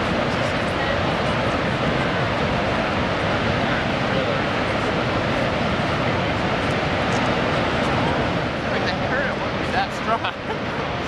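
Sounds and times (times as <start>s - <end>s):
waterfall roaring: 0.0s - 11.0s.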